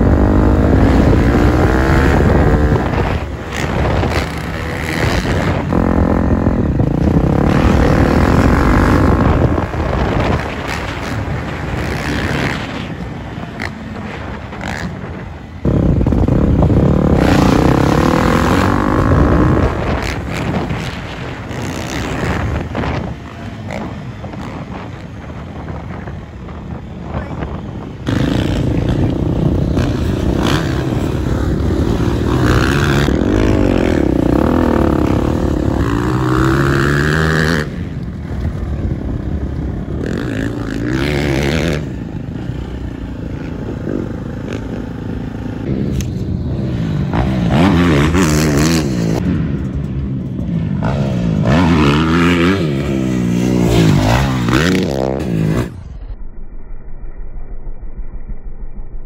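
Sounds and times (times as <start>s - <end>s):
dirt bike engine revving: 0.0s - 25.0s, 28.0s - 37.9s, 39.8s - 55.8s.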